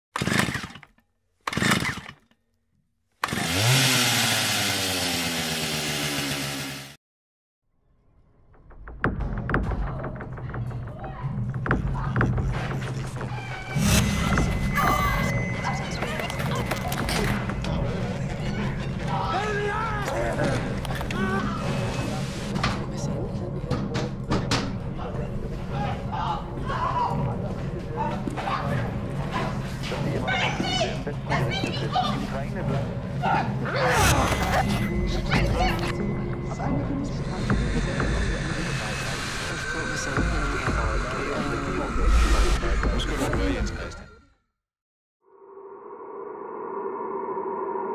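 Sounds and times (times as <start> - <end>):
chainsaw running: 0.2 - 2.3, 3.2 - 7.0
low steady drone: 34.0 - 42.7.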